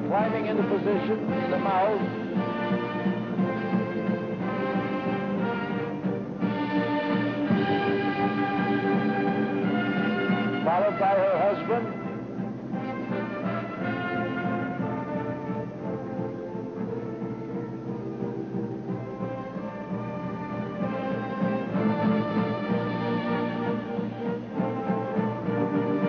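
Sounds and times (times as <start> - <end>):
orchestral band music: 0.0 - 26.0.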